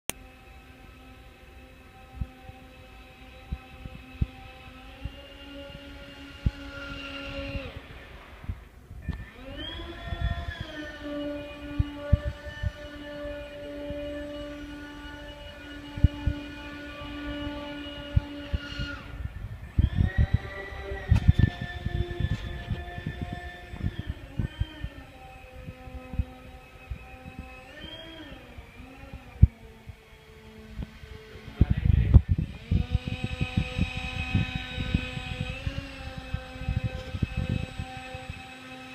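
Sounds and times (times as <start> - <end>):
fan motors whining: 0.1 - 38.9.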